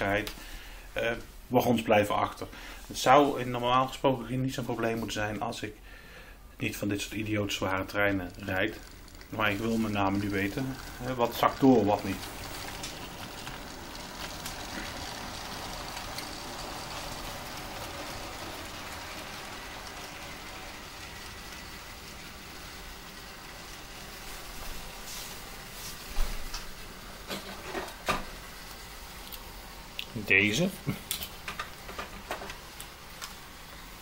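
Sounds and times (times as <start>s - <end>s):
faint high motor whine: 0.0s - 34.0s
model train rolling on track: 6.7s - 34.0s.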